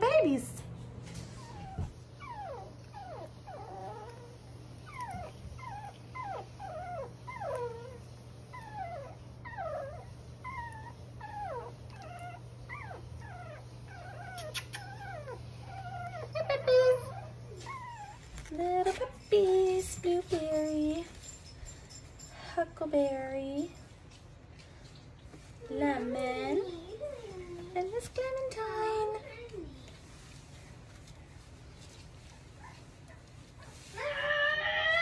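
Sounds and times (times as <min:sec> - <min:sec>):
puppies whimpering and squeaking: 0:01.0 - 0:22.6, 0:25.4 - 0:29.5, 0:31.8 - 0:35.0.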